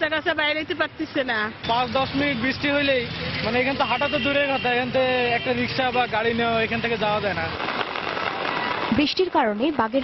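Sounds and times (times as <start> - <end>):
vehicle traffic: 0.0 - 10.0
man speaking: 1.6 - 7.6.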